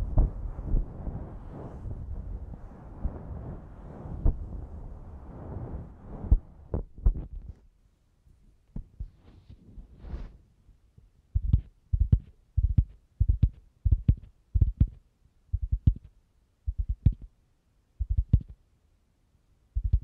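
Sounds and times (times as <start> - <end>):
soft rubbing swish: 0.0 - 7.6, 8.8 - 10.6.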